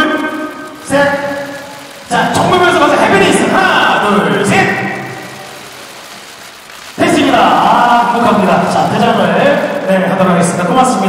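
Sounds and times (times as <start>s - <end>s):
indoor venue crowd din: 0.0s - 11.0s.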